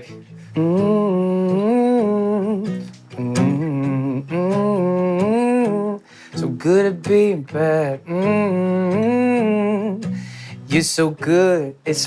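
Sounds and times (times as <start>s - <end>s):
man singing wordless notes: 0.0s - 12.0s
soft acoustic guitar: 0.0s - 12.0s.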